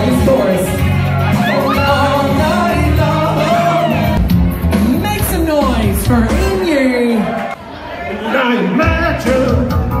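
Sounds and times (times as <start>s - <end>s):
pop backing track with bass beat: 0.0s - 7.4s, 8.8s - 10.0s
karaoke singing: 0.0s - 10.0s.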